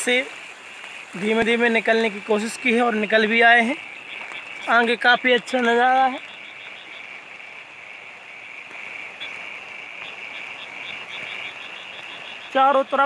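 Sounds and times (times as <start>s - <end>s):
floodwater flowing: 0.0s - 13.0s
frogs calling: 0.0s - 13.0s.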